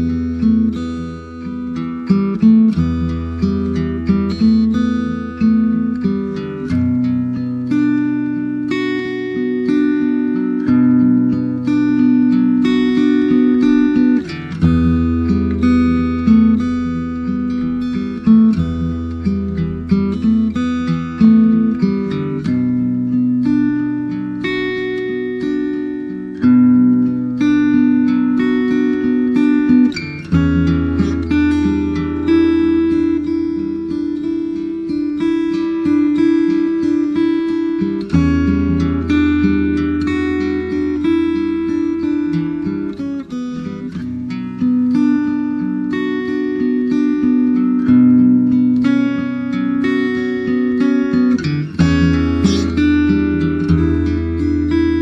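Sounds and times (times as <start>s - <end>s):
acoustic guitar music: 0.0s - 55.0s.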